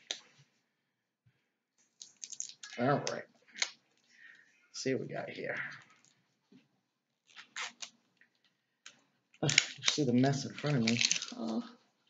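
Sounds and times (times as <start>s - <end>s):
packaging clicks and rustles: 9.4s - 11.6s.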